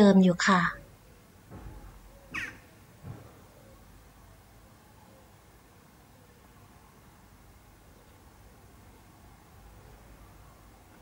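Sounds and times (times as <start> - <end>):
faint outdoor background sound: 0.0 - 11.0
short bird call: 2.3 - 2.7.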